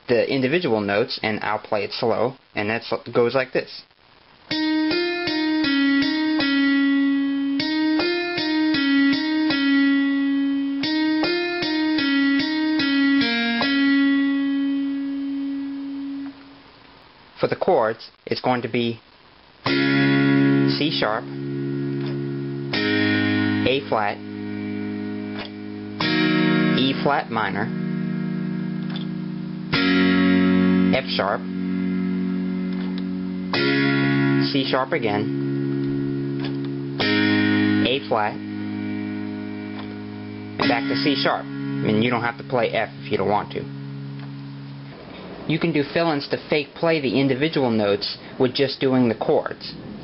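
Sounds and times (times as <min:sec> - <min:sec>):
electronic keyboard single notes: 0:04.5 - 0:16.8, 0:19.6 - 0:46.2.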